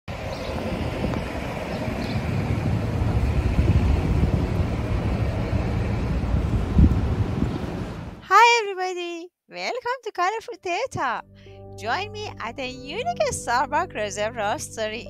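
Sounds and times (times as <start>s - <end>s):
passing cars rumble: 0.1s - 8.2s
wind buffeting microphone: 0.1s - 8.2s.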